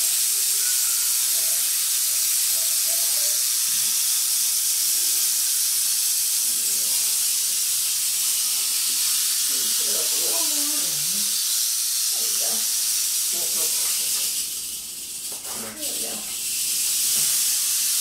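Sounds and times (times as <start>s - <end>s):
rattlesnake rattling its tail: 0.0s - 18.0s.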